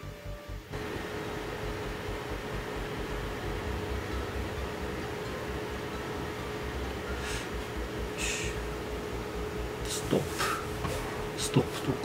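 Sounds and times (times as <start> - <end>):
background music: 0.0 - 10.2
cooling fans whirring: 0.0 - 12.0
steady electrical hum: 0.0 - 12.0.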